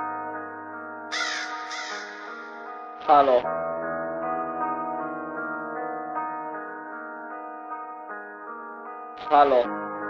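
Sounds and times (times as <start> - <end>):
crow cawing: 1.1 - 3.0.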